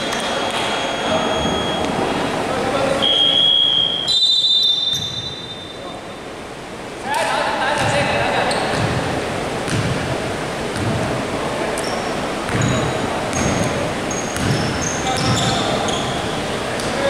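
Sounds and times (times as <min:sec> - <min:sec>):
high-pitched shoe squeals: 0:00.0 - 0:01.9, 0:03.0 - 0:05.9, 0:14.1 - 0:16.4
basketball bouncing on wooden court: 0:04.9 - 0:05.4, 0:07.8 - 0:09.1, 0:09.7 - 0:10.1, 0:10.7 - 0:11.2, 0:12.5 - 0:16.1
players' voices: 0:05.8 - 0:17.0.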